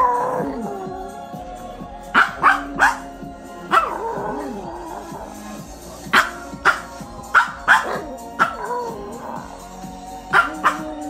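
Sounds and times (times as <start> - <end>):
music: 0.0 - 11.0
dog yipping: 2.2 - 3.1, 6.1 - 9.0, 10.3 - 11.0.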